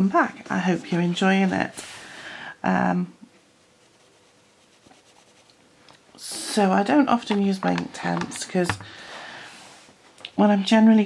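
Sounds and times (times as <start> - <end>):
pencil scratching on paper: 3.6 - 5.6.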